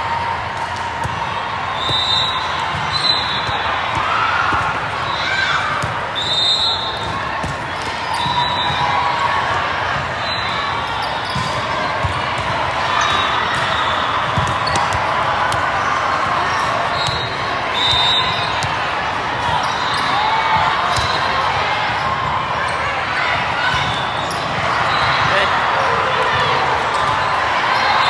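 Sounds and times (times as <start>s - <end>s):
crowd of voices in a hall: 0.0s - 28.0s
volleyballs thudding: 0.6s - 5.0s, 6.9s - 8.8s, 11.2s - 19.7s.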